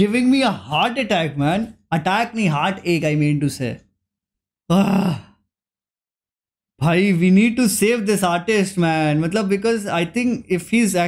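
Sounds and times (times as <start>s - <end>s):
man speaking: 0.0s - 3.9s, 6.8s - 11.0s
man sighing: 4.7s - 5.4s.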